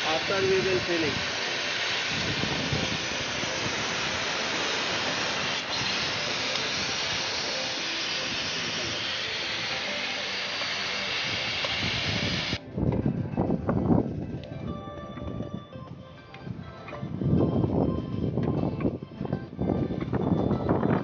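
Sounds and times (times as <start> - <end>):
hiss of gas escaping: 0.0 - 12.6.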